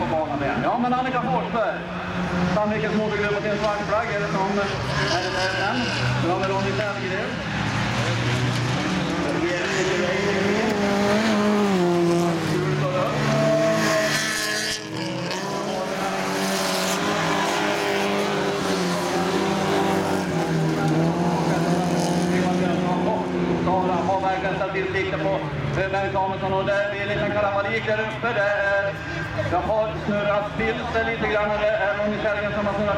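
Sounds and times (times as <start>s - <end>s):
race car engines revving: 0.0s - 32.9s.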